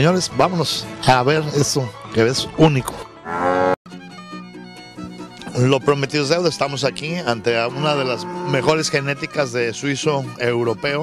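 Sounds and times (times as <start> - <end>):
background music with held notes: 0.0 - 11.0
cow mooing: 3.2 - 3.8, 7.5 - 9.2.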